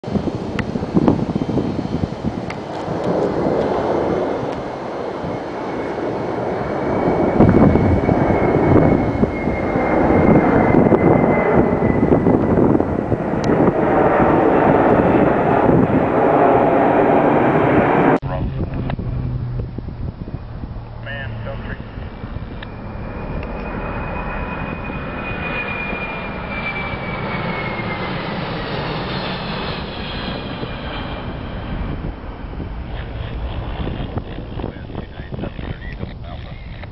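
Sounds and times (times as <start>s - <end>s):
jet engines passing overhead: 0.0s - 36.9s.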